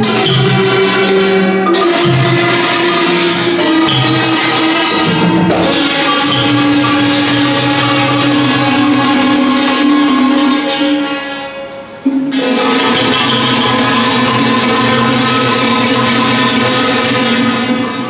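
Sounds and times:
drums: 0.0s - 11.1s, 11.8s - 18.0s
hammered dulcimers: 0.0s - 18.0s
xylophones struck with mallets: 0.0s - 18.0s.

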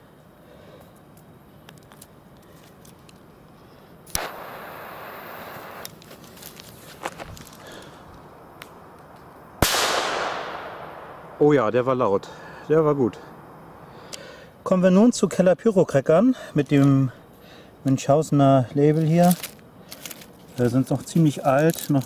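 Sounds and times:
firecracker bang: 4.1s - 5.2s, 9.6s - 11.7s
firecracker fuse hissing: 4.1s - 8.2s.

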